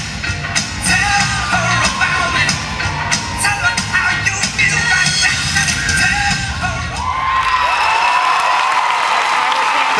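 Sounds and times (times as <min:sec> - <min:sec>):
music: 0:00.0 - 0:07.6
audience cheering and applauding: 0:00.4 - 0:09.9.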